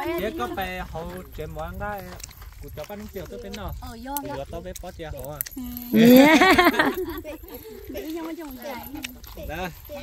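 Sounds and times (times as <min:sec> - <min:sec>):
people talking: 0:00.0 - 0:01.7, 0:05.6 - 0:10.0
light metallic jingling: 0:00.0 - 0:10.0.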